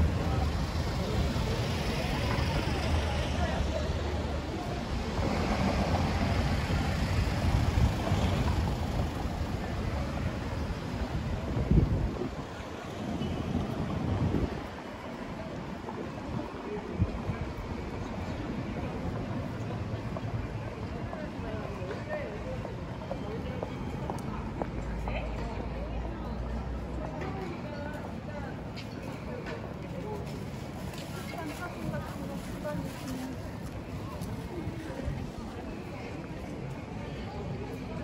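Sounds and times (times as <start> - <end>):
voices of passers-by: 0.0 - 38.0.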